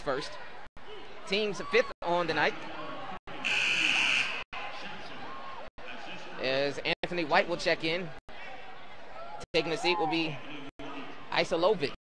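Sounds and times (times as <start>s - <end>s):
buzzer sounding: 3.5s - 4.4s.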